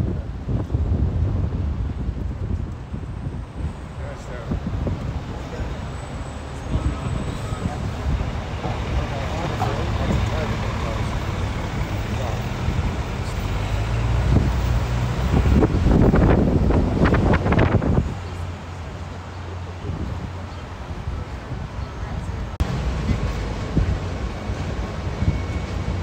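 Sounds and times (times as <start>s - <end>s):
street traffic: 0.0s - 26.0s
vehicle engine rumble: 0.0s - 26.0s.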